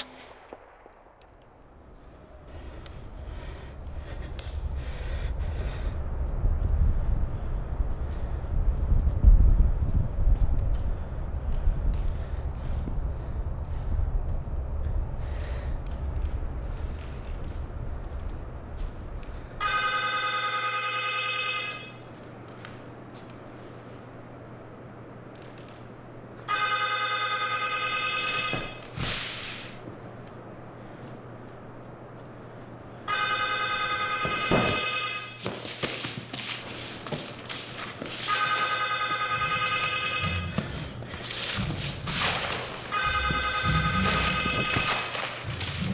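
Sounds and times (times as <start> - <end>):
deep low rumble: 0.0 - 19.6
steady low hum: 0.0 - 45.9
telephone ringing: 19.6 - 22.0, 26.5 - 28.8, 33.1 - 35.4, 38.3 - 40.7, 42.9 - 45.2.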